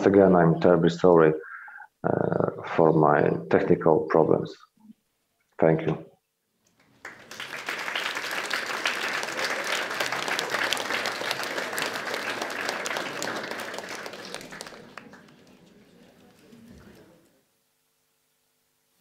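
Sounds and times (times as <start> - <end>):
audience applauding: 6.8 - 17.1.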